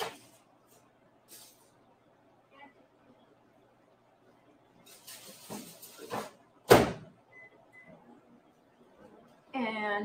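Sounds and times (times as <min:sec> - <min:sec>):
rustling at a refrigerator: 0:00.0 - 0:02.0, 0:04.7 - 0:07.0.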